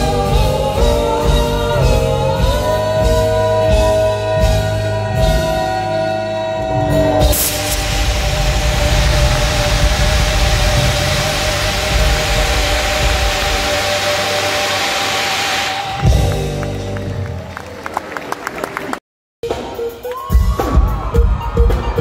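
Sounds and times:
drums: 0.0 - 17.7, 19.4 - 22.0
gas jets hissing: 7.2 - 16.7
scattered clapping: 15.9 - 19.0.

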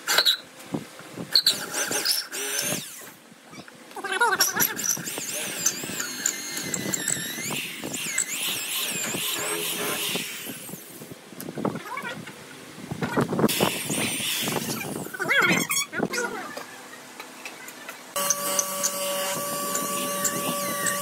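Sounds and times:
electric drill boring wood: 1.5 - 3.2, 4.8 - 11.0, 18.2 - 21.0.

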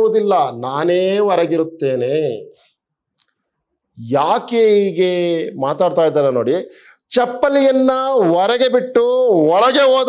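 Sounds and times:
man lecturing: 0.0 - 2.6, 4.0 - 10.0.

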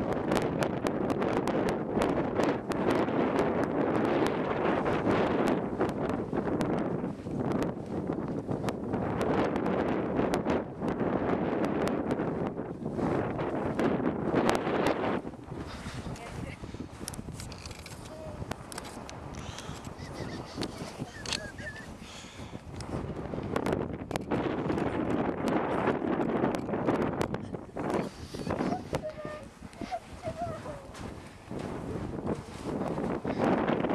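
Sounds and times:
wind buffeting microphone: 0.0 - 33.9
sharp ticks: 17.0 - 21.5.

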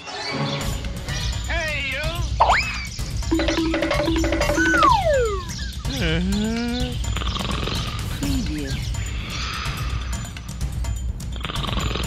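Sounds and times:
background music: 0.0 - 12.0
short repeated notes: 3.3 - 5.5
swooping boing tone: 3.3 - 5.5
rising whistle: 3.3 - 5.6
long falling whistle: 4.5 - 5.5.

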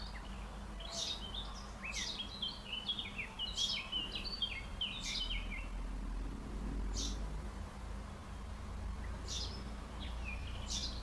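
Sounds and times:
songbirds chirping: 0.0 - 11.0.

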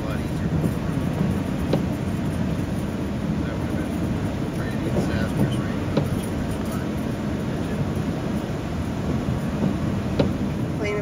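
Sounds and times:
tyre rumble on wet road: 0.0 - 11.0.

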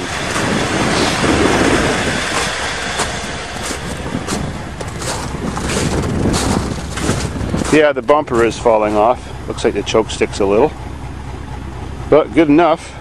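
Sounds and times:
wind on microphone: 0.0 - 8.5
car engine idling: 0.0 - 13.0
footsteps crunching in snow: 2.2 - 9.2.

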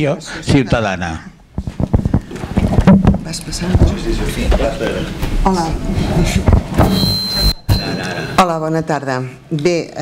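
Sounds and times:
microphone being handled: 1.5 - 5.4, 6.2 - 7.0.

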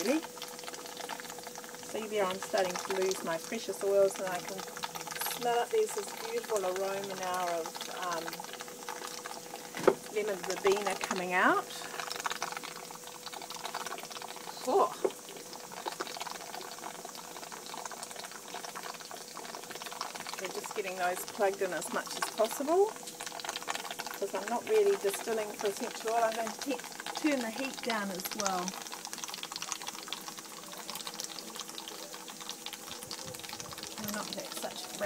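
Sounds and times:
gas burner hum: 0.0 - 35.0
water bubbling at the boil: 0.0 - 35.0.

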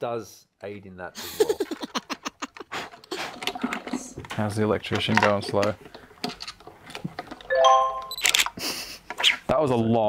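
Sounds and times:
rising bell-like chime: 7.5 - 8.2.

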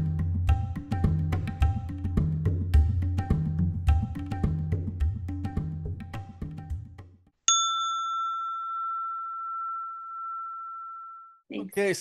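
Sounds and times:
percussion-backed music: 0.0 - 7.4
bell-like chime ringing: 7.5 - 11.4.

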